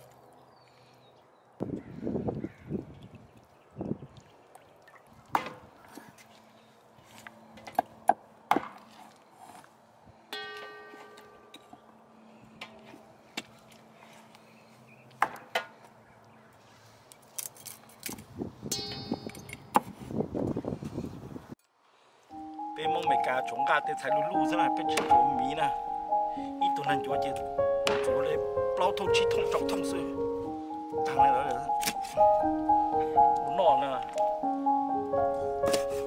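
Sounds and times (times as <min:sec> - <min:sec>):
held musical tones: 0:22.3 - 0:36.0.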